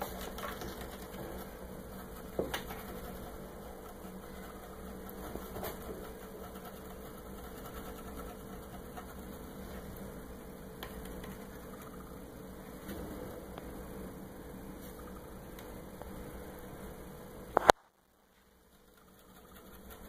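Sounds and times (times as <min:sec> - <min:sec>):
low mechanical hum: 0:00.0 - 0:20.0.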